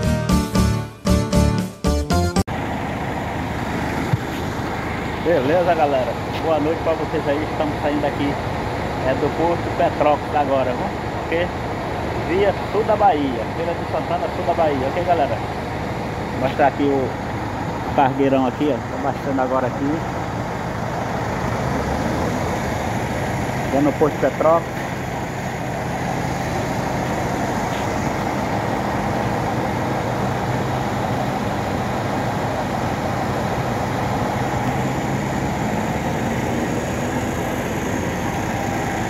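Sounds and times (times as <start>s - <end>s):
music: 0.0s - 2.5s
low vehicle rumble: 2.4s - 39.0s
diesel engine idling: 2.5s - 39.0s.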